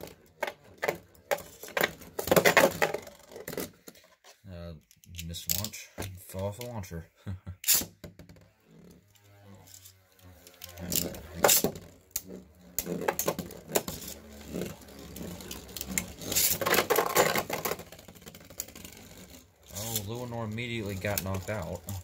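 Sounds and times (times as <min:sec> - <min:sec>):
spinning tops whirring on plastic: 0:00.0 - 0:04.0, 0:07.7 - 0:22.0
spinning tops clacking together: 0:07.6 - 0:07.9, 0:09.7 - 0:22.0.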